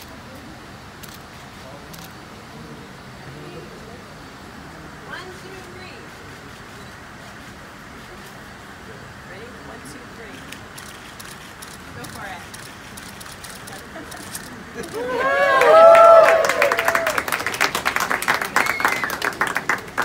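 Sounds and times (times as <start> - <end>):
background chatter of people: 0.0 - 15.4.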